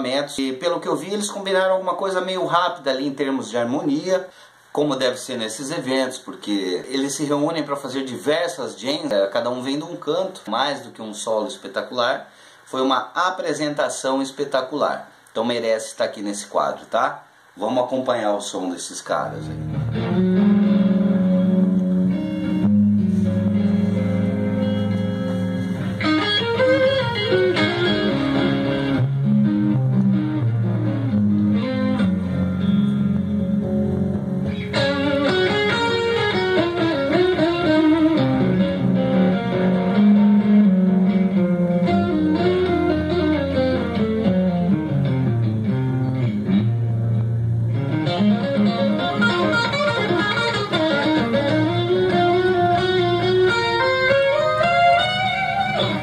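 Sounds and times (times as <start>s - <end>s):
steady bass line: 19.5s - 56.0s
electric guitar runs: 19.7s - 56.0s.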